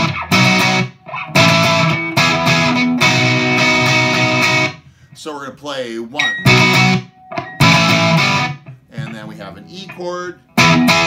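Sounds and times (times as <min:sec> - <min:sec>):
electric guitar chord strummed: 0:00.0 - 0:04.7, 0:06.4 - 0:08.8, 0:10.5 - 0:11.0.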